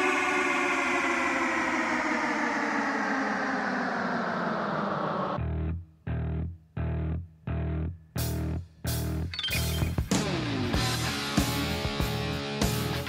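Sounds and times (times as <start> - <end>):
distorted guitar chord sliding down: 0.0 - 7.8, 10.1 - 13.0.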